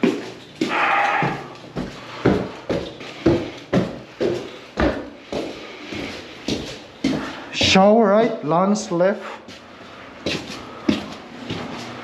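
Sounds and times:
footsteps climbing stairs: 0.0s - 9.6s, 10.2s - 12.0s.

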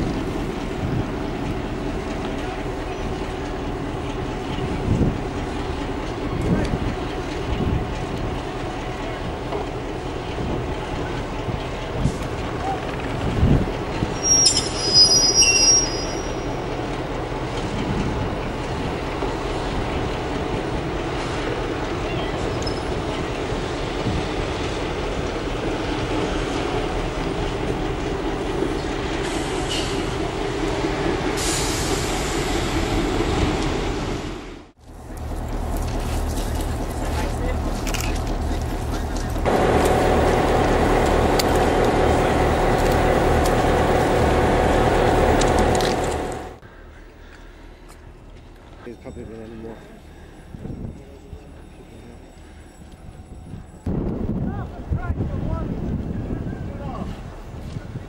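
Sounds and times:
diesel locomotive engine running: 0.0s - 56.4s
brief high squeal: 14.2s - 16.5s.

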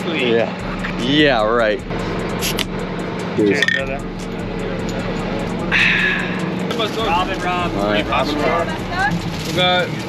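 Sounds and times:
steady low hum: 0.0s - 9.6s.

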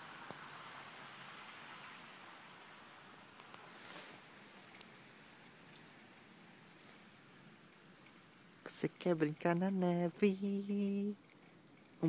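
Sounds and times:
faint outdoor air hiss: 0.0s - 12.0s
short rustle: 3.5s - 8.2s.

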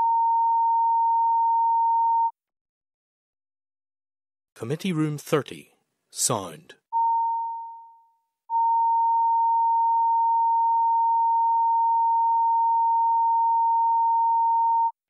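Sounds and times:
electronic test tone: 7.0s - 15.0s.

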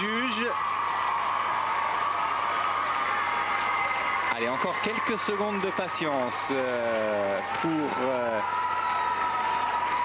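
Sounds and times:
crowd applauding and cheering: 0.0s - 10.0s.

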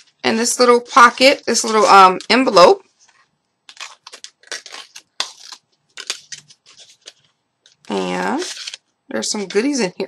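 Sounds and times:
paper envelope rustling: 0.0s - 9.7s.

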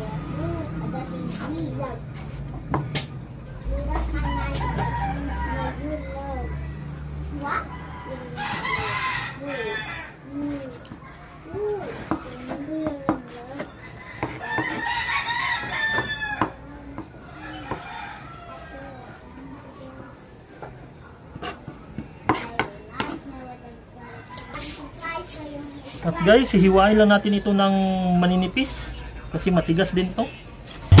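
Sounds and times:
rooster crowing: 4.2s - 10.3s, 13.8s - 16.6s, 17.2s - 19.2s
knife chopping on wooden board: 12.0s - 14.8s, 22.3s - 23.2s.

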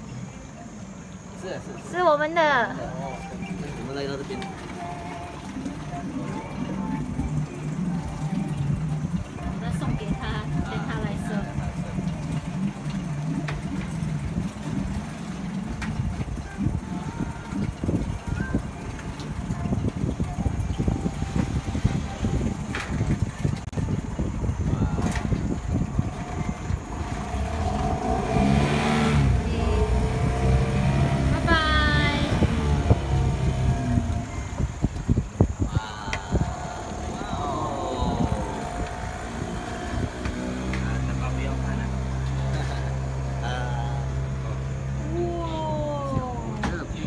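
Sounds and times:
outboard motor droning: 0.0s - 47.0s.

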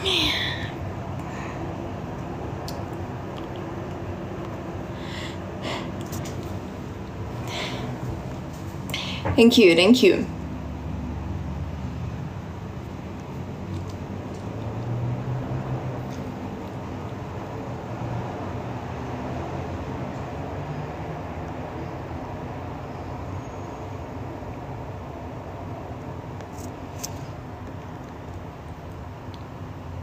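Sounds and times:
low rumbling background noise: 0.0s - 30.0s.

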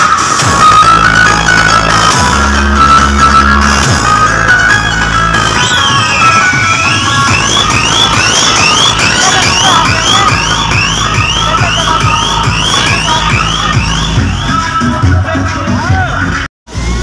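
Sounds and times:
electronic dance music: 0.0s - 17.0s
rising synth sweep: 0.4s - 14.6s.

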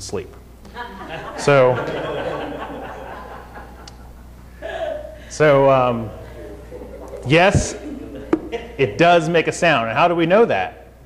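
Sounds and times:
light chuckling laughter: 6.2s - 8.8s.

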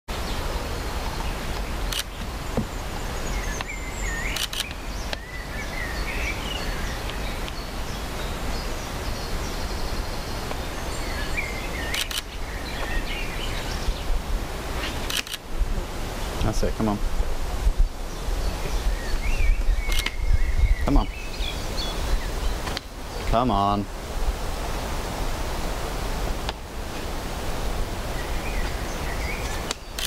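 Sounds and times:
small birds calling: 0.1s - 24.0s, 27.7s - 30.0s
wind rumble on microphone: 0.1s - 29.7s
faint sharp clicks: 4.4s - 5.2s, 19.9s - 20.2s, 29.6s - 30.0s.

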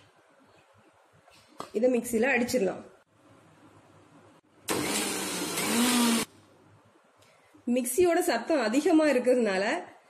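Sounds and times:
mixer grinder motor hum: 4.7s - 6.3s.

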